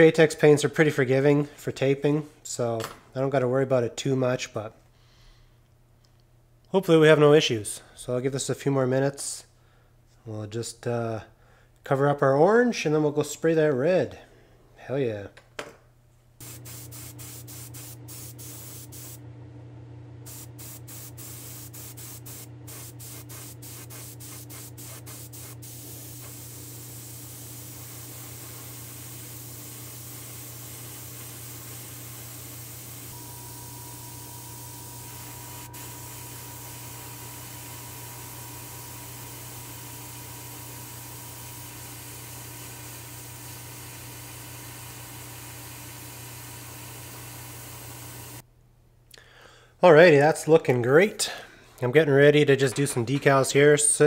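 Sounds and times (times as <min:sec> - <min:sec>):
airbrush hissing: 0:16.4 - 0:19.2, 0:20.2 - 0:48.4
low hum: 0:32.6 - 0:39.6.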